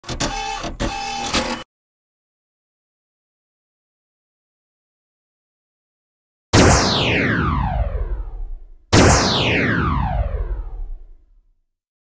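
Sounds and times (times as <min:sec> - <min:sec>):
mechanical clatter: 0:00.0 - 0:01.6
steady tone: 0:06.6 - 0:11.1.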